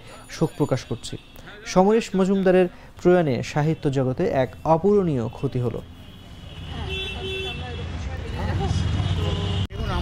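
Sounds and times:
road traffic rumble: 0.0 - 10.0
people talking: 6.7 - 10.0.

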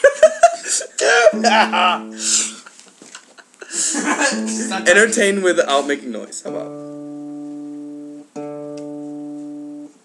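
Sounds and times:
low guitar tuning note: 4.3 - 10.0.

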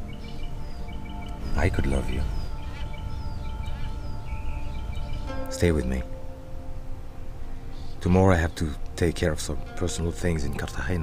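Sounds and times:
birds chirping: 0.0 - 11.0
soft background music: 0.0 - 11.0.

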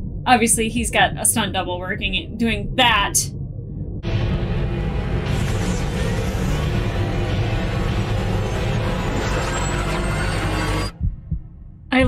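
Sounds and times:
dense film music: 0.0 - 12.0
action sound effects: 3.8 - 11.1.

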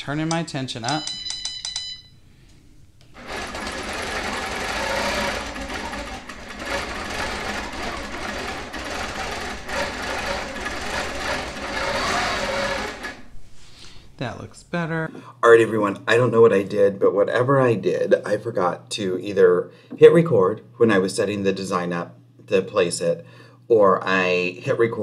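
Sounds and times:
quilting machine stitching: 3.2 - 13.4.

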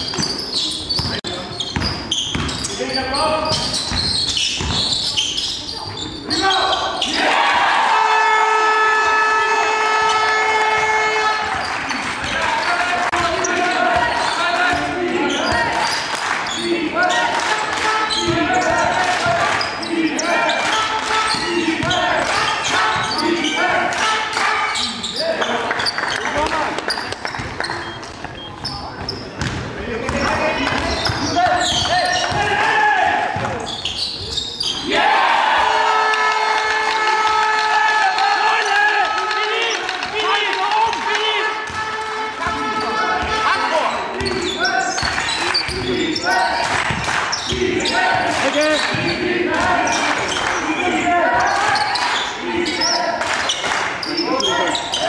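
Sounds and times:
basketball bouncing on court: 0.0 - 2.7, 3.4 - 5.1, 18.0 - 19.7, 21.3 - 23.2, 25.8 - 32.6, 33.3 - 34.4, 44.1 - 46.0, 46.6 - 50.4
players calling: 0.0 - 55.0.

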